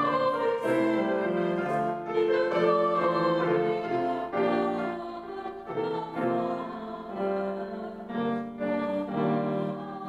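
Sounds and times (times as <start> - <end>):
congregation singing a hymn: 0.0 - 10.0
piano accompaniment: 0.0 - 10.0.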